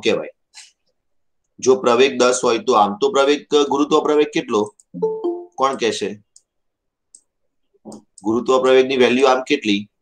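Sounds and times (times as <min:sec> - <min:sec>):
man speaking: 0:01.6 - 0:06.4, 0:07.8 - 0:10.0.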